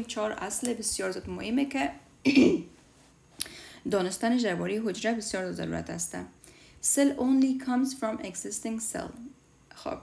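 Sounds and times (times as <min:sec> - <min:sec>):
person clearing throat: 0:02.2 - 0:02.7.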